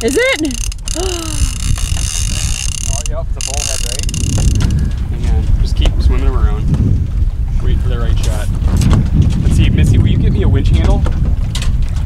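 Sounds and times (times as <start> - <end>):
wind rushing: 4.0 - 12.0.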